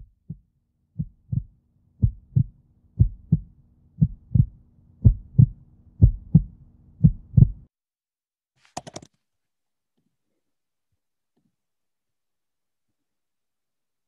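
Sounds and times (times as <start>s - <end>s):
heartbeat thumps: 0.0s - 7.7s.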